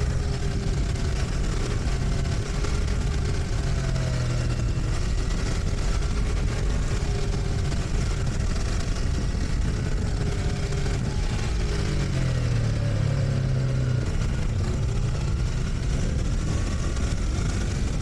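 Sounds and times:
motorcycle engine running: 0:00.0 - 0:18.0
wind rushing over microphone: 0:00.0 - 0:18.0.

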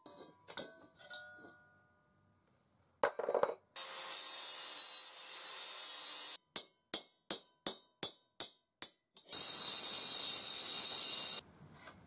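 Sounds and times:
angle grinder cutting steel: 0:03.8 - 0:06.4, 0:09.3 - 0:11.4.

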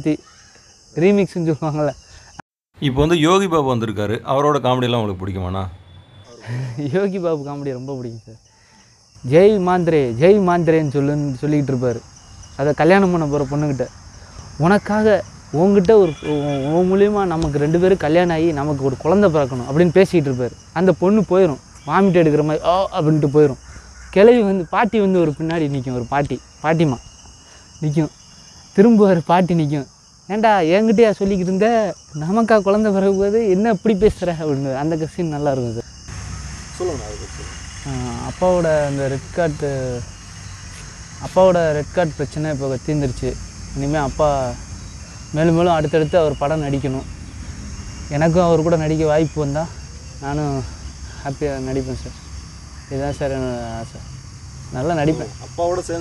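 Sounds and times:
insects droning: 0:00.0 - 0:56.0
man talking: 0:02.8 - 0:07.1.

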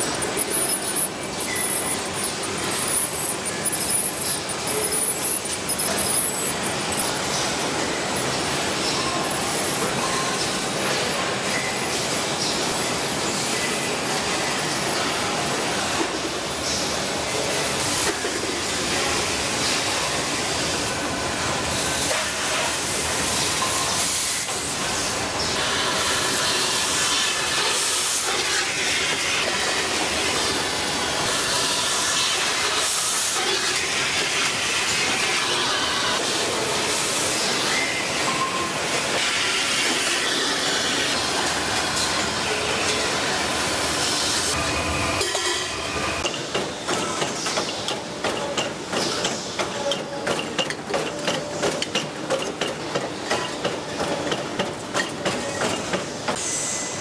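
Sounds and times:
machine clicks and knocks: 0:46.2 - 0:56.4
machinery hissing: 0:55.8 - 0:57.0.

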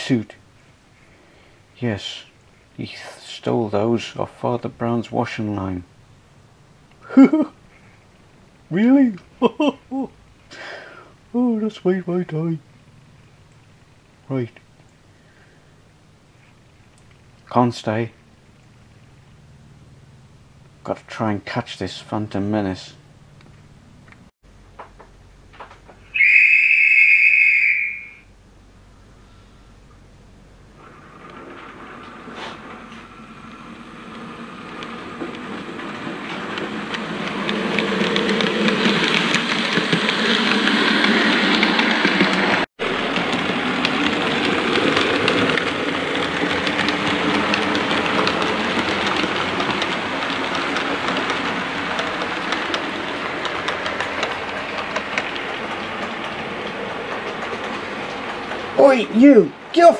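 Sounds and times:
train running: 0:01.9 - 0:06.0, 0:25.5 - 0:28.3, 0:29.0 - 0:59.9
whistle blast: 0:26.1 - 0:28.3.

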